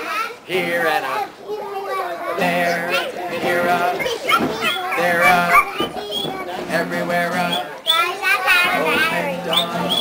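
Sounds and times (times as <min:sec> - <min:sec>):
strummed acoustic guitar: 0:00.4 - 0:10.0
children imitating monkey calls: 0:01.2 - 0:06.5, 0:07.8 - 0:10.0.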